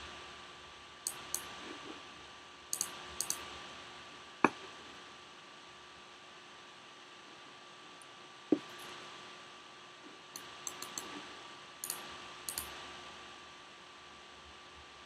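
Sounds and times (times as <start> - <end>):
faint room hum: 0.0 - 15.0
computer mouse clicks: 1.0 - 1.8, 2.7 - 3.6, 10.4 - 11.2, 11.8 - 12.8.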